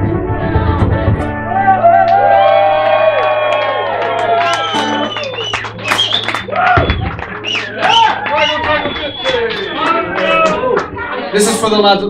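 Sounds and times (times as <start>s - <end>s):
crowd whooping and cheering: 1.4s - 11.3s.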